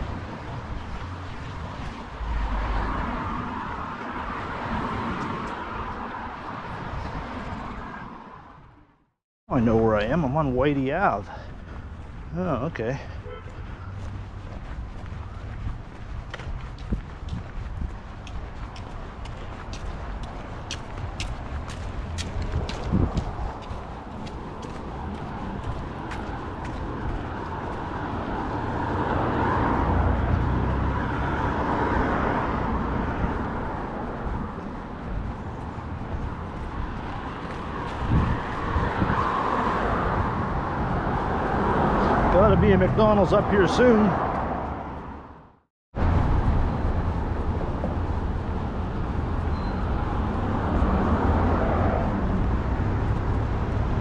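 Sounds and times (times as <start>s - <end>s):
cars driving by: 0.0s - 54.0s.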